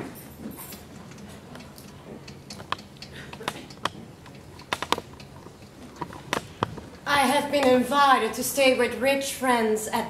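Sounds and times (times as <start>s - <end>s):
low background noise: 0.0s - 10.0s
sharp clicks and taps: 1.1s - 6.9s.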